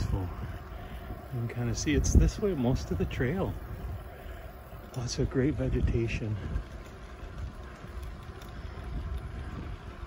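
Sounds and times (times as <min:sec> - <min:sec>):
wind buffeting the microphone: 0:00.0 - 0:10.0.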